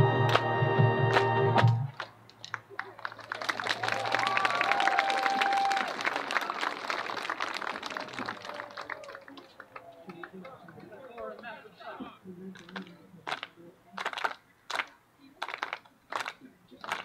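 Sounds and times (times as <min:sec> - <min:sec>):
marching band music: 0:00.0 - 0:02.0
audience applause: 0:01.1 - 0:11.6, 0:12.6 - 0:17.0
pitched cheer: 0:02.8 - 0:10.2.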